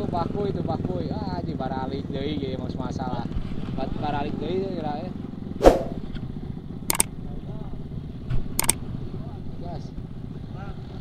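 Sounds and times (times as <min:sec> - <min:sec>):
dirt bike engines idling: 0:00.0 - 0:05.5, 0:06.3 - 0:11.0.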